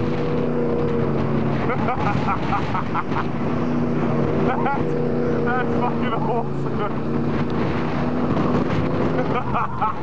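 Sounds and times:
engine revving hard: 0.0s - 10.0s
person laughing: 1.6s - 3.4s, 9.0s - 10.0s.

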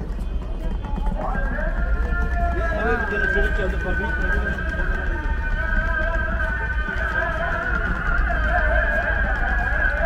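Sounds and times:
crowd voices: 0.0s - 10.0s
low traffic rumble: 0.0s - 10.0s.

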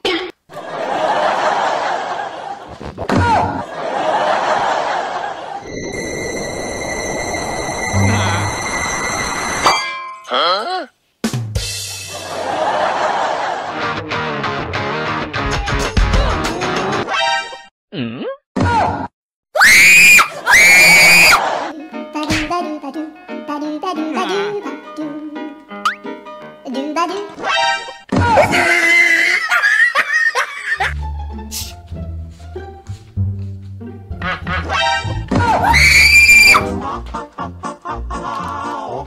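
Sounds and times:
high-pitched scream: 5.6s - 9.8s, 19.6s - 21.4s, 35.6s - 36.6s
background music: 21.4s - 28.4s, 30.8s - 39.0s
person screaming: 28.2s - 29.5s, 35.4s - 36.6s
light music: 30.8s - 35.4s.

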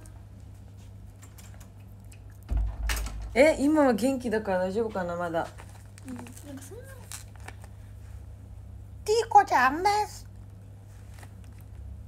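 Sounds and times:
low steady hum: 0.0s - 12.0s
phone handling thump and rumble: 2.5s - 3.4s.

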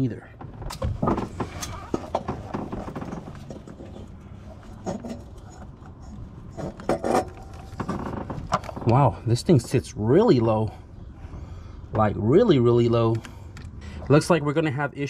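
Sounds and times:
metal clinking and scraping: 1.0s - 8.7s.

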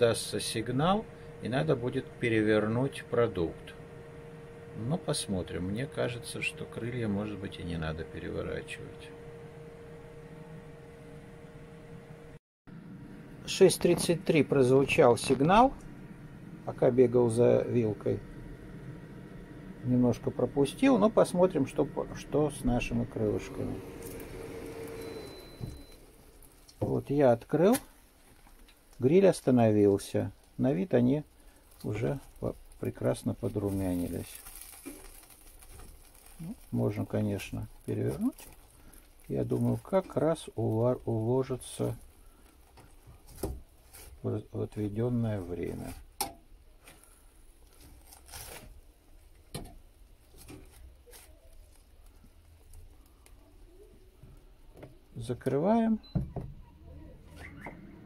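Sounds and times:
grill fan humming: 0.0s - 56.0s.

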